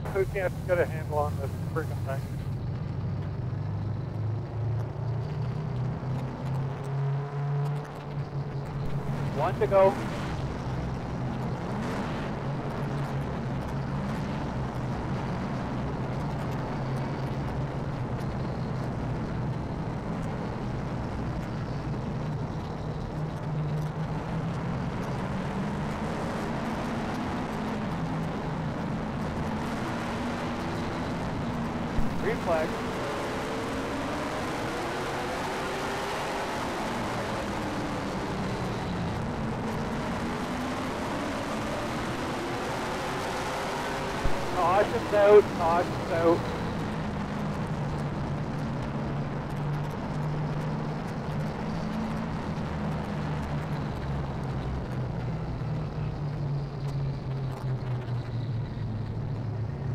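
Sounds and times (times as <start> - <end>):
car engine droning: 0.0 - 59.9.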